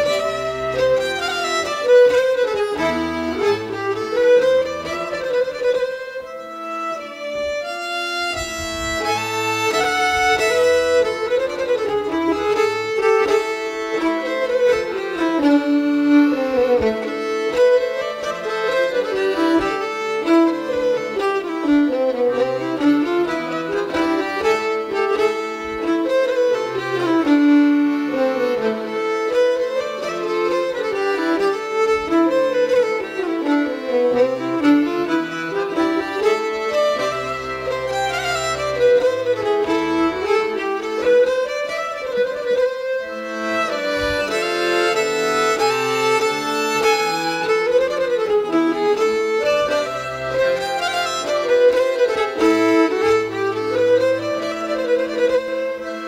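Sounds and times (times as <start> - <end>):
fiddle playing folk tune: 0.0 - 56.0.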